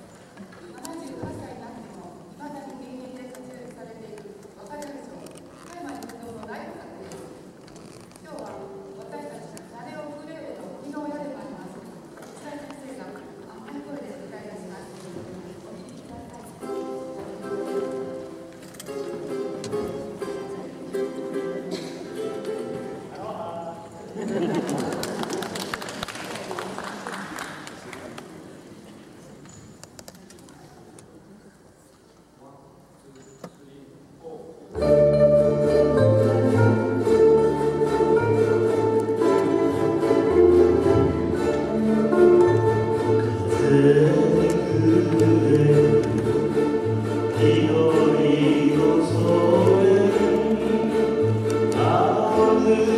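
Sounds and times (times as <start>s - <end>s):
ukuleles strumming chords: 16.3s - 24.8s, 34.7s - 52.9s.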